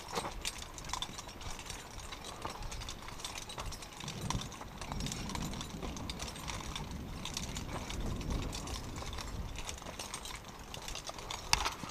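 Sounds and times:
zipline trolley clicking and rattling: 0.0s - 11.9s.

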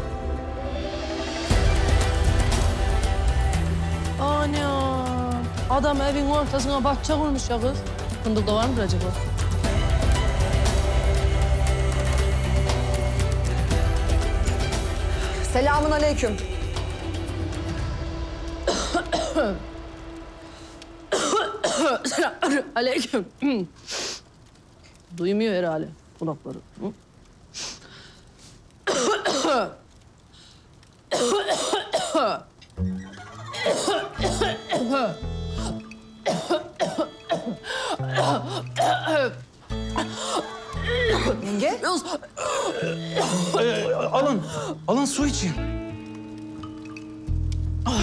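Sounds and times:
faint background music: 0.0s - 23.7s, 33.6s - 48.0s
person's voice: 4.1s - 9.3s, 15.3s - 16.8s, 41.0s - 45.8s
person coughing: 18.7s - 19.6s, 21.1s - 22.8s, 33.5s - 39.4s, 42.4s - 44.8s.

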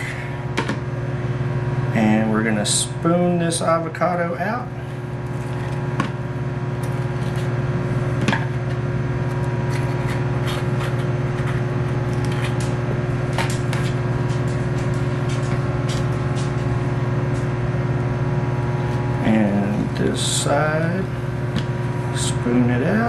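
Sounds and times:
microwave oven humming: 0.0s - 23.0s
fork scraping avocado: 9.3s - 12.6s.

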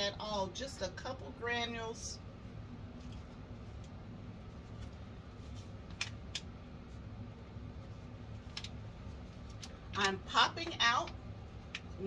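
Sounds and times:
steady low hum: 0.0s - 12.0s
faint clicks and rustles: 2.8s - 12.0s.

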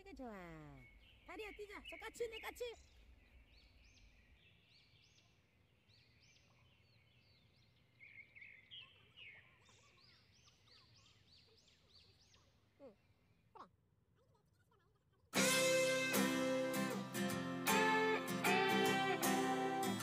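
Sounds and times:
birds chirping: 0.5s - 13.2s, 15.4s - 20.0s.

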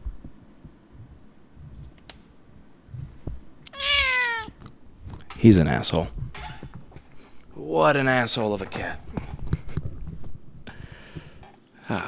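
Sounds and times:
cat meowing loudly: 3.7s - 4.6s.

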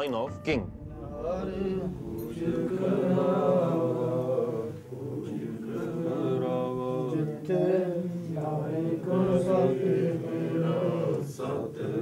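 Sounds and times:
voices chanting a hymn: 0.6s - 12.0s.

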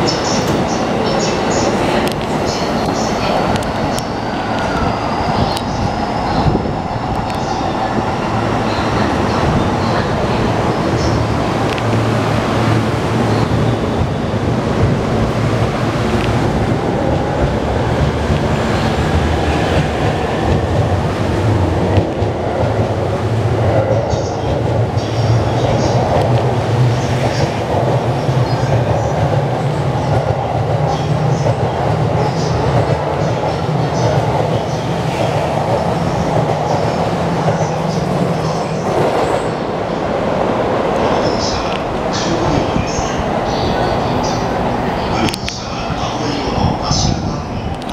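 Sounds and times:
electric train running past: 0.0s - 47.9s.

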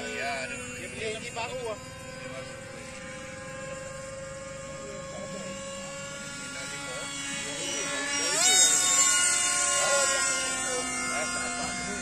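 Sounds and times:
model aircraft motor whine: 0.0s - 12.0s.

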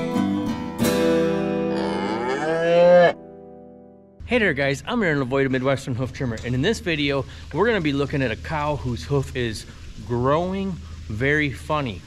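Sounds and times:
cow mooing: 1.6s - 3.2s.

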